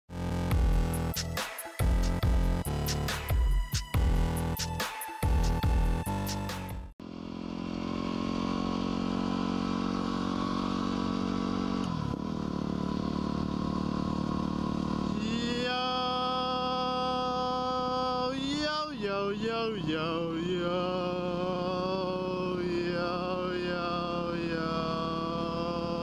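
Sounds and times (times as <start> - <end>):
motorcycle engine running: 0.1 - 4.7, 5.3 - 26.0
electronic music: 0.1 - 6.9
held chanting voice: 15.2 - 26.0.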